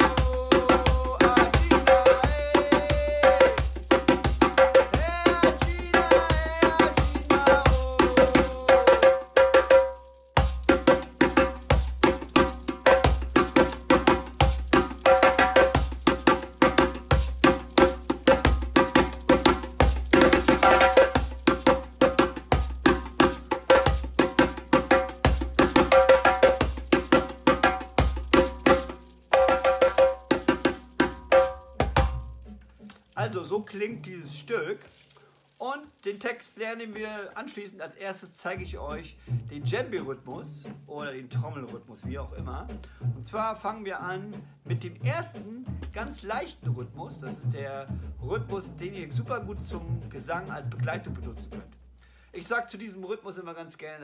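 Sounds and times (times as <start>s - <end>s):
djembe played with hands: 0.0s - 32.9s, 45.0s - 46.1s.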